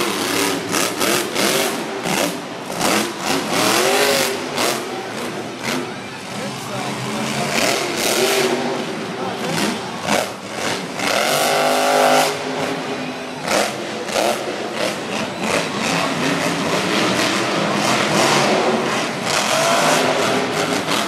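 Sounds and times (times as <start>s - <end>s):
monster truck engine revving: 0.0s - 21.0s.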